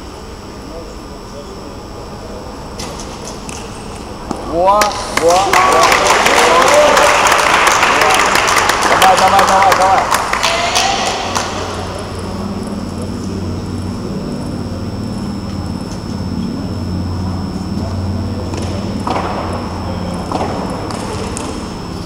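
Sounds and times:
high-pitched whine: 0.0s - 22.0s
low mechanical hum: 0.0s - 22.0s.

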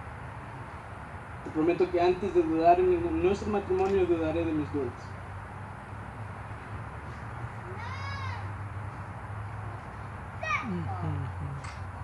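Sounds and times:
baby crying out: 7.7s - 8.5s.

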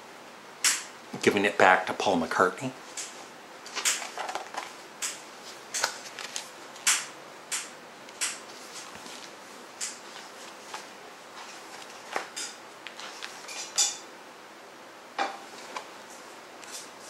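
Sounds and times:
book pages turning: 3.0s - 7.0s, 8.2s - 13.8s.

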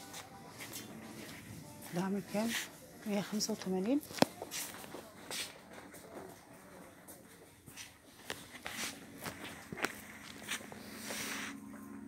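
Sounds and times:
footsteps walking: 0.0s - 12.0s.

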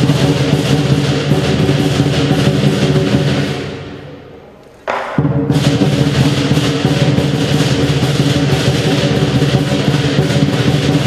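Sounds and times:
large drum beaten rapidly: 0.0s - 4.0s, 4.9s - 11.0s
cymbals clashing: 0.0s - 11.0s.

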